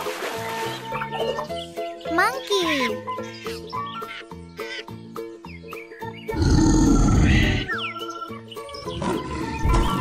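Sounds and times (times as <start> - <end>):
bright children's music: 0.3 - 6.4, 7.4 - 10.0
lion roar: 6.3 - 7.7.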